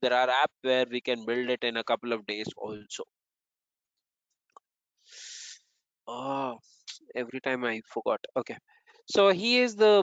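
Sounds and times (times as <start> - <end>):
breath into microphone: 5.0 - 5.6.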